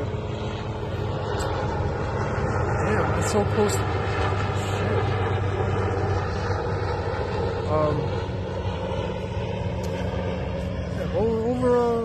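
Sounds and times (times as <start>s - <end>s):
helicopter rotor drone: 0.0s - 12.0s.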